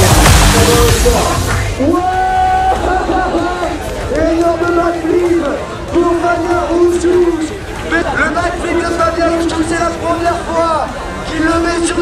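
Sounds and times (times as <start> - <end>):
announcer over public address: 0.0 - 12.0
crowd noise: 0.0 - 12.0.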